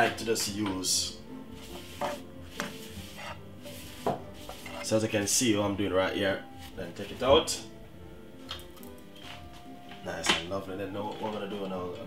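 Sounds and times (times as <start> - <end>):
soft background music: 0.0 - 12.0
paper towel wiping pan: 0.9 - 5.7.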